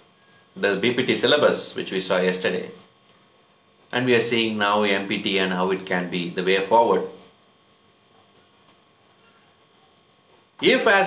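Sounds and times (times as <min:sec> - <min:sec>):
faint electrical hum: 0:00.0 - 0:11.0
man speaking: 0:00.6 - 0:02.9, 0:03.9 - 0:07.3, 0:10.6 - 0:11.0.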